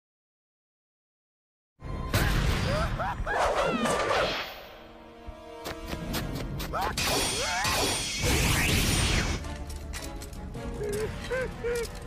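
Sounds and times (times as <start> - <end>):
dramatic music: 1.8 - 12.0
character laughing cry: 2.7 - 3.9, 10.8 - 12.0.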